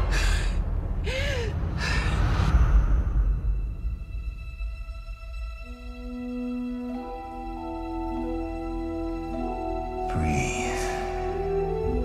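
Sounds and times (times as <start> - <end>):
woman gasping: 0.0 - 2.4
low rumbling drone: 0.0 - 5.6.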